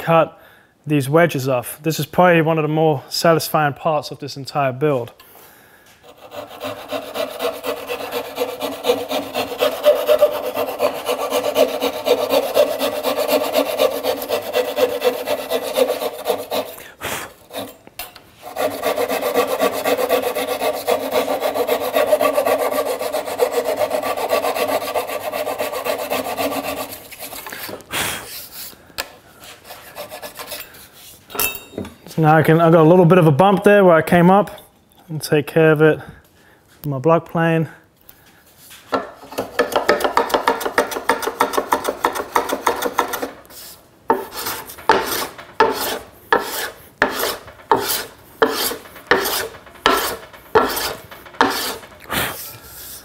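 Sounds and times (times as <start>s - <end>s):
hand saw cutting wood: 6.0s - 17.8s, 18.4s - 27.7s, 29.6s - 30.7s, 39.0s - 52.0s.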